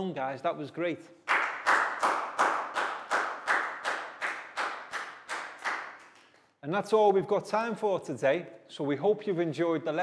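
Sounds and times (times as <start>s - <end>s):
hands clapping rhythmically: 1.2s - 6.6s.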